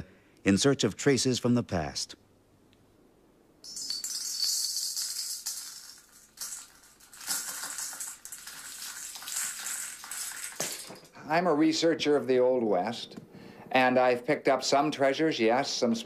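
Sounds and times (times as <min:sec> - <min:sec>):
metal nuggets rattling into pan: 0:03.7 - 0:11.1.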